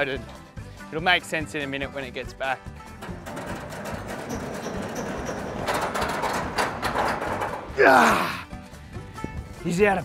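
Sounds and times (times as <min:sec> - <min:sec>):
metal roof rolling on bearings: 0:02.8 - 0:08.0
sheet metal clanks and rattles: 0:02.8 - 0:08.0
man grunting ah of effort: 0:07.8 - 0:08.5.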